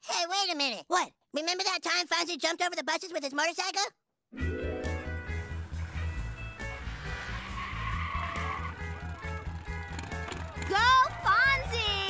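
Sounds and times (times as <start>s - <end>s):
motorcycle engine revving: 5.4s - 10.7s.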